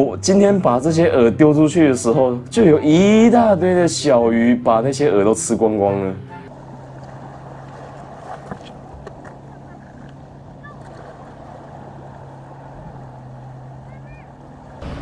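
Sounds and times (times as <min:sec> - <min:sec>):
wind: 0:00.0 - 0:15.0
surf on rocky shore: 0:06.5 - 0:15.0
low hum: 0:14.4 - 0:15.0.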